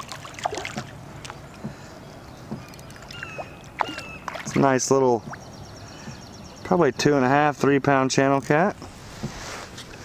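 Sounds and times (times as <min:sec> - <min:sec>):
fish splashing in water: 0:00.0 - 0:01.4, 0:02.6 - 0:04.6.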